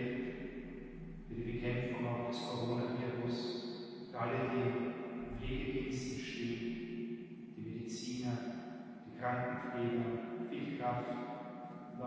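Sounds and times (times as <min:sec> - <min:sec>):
man chanting a prayer: 0:00.0 - 0:00.4, 0:01.1 - 0:03.6, 0:04.2 - 0:06.8, 0:07.6 - 0:08.4, 0:09.1 - 0:11.2.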